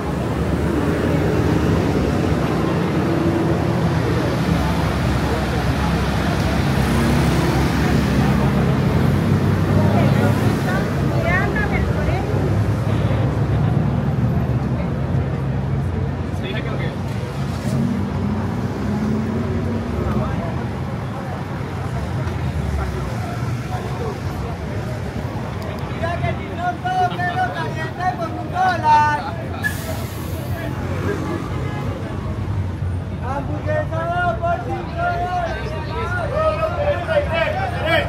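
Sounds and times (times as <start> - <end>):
people talking: 0.0 - 18.2, 19.5 - 38.0
bus engines running: 0.0 - 38.0
passing street traffic: 0.0 - 38.0.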